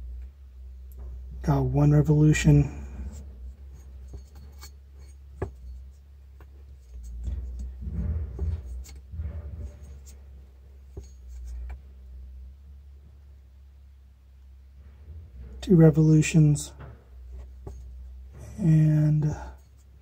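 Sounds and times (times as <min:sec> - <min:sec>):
drive belt rubbing and scraping: 0:02.4 - 0:11.8.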